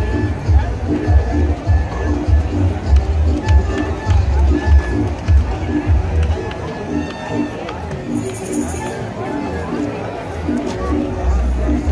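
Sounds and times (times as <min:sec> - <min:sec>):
deep bass drum beats: 0:00.0 - 0:07.1.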